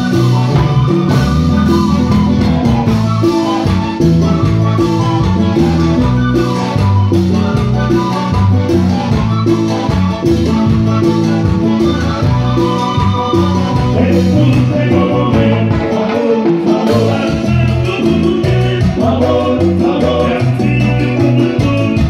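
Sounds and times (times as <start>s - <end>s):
latin dance band playing: 0.0s - 22.0s.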